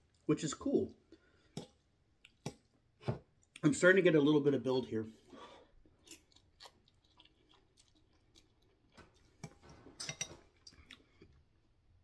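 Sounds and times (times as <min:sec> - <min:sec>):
person chewing noodles: 0:01.1 - 0:02.8, 0:05.7 - 0:09.6, 0:10.5 - 0:11.5.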